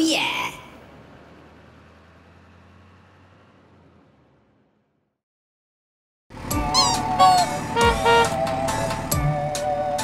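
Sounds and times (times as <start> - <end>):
faint low engine rumble: 0.0 - 5.0, 6.4 - 9.4.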